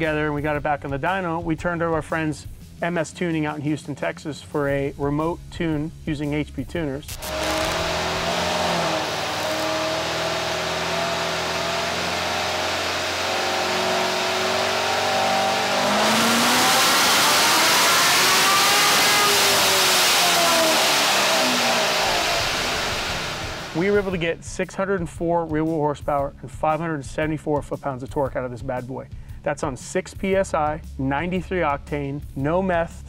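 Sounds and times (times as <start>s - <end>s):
car engine revving on dyno: 7.1s - 24.1s.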